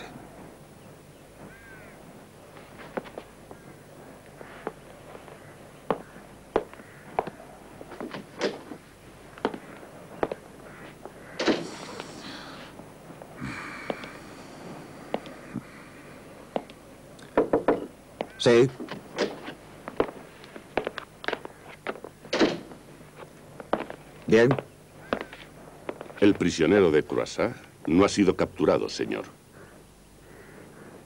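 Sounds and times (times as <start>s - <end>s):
door rasp: 11.4s - 12.2s.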